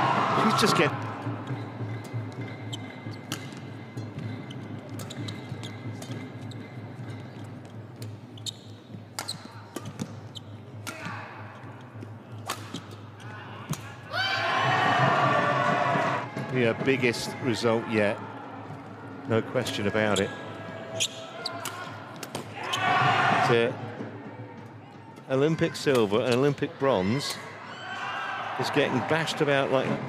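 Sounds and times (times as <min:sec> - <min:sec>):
crowd noise: 0:00.0 - 0:01.9, 0:13.0 - 0:30.0
shoe squeaks on court: 0:04.4 - 0:06.7, 0:08.3 - 0:10.6.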